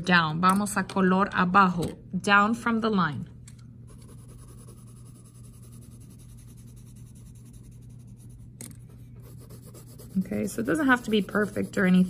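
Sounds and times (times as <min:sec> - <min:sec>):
colored pencil scratching on paper: 0:03.9 - 0:12.0.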